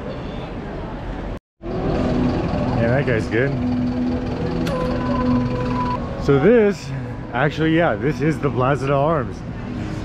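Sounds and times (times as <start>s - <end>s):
street voices: 0.0s - 10.0s
truck diesel engine running: 1.6s - 6.2s.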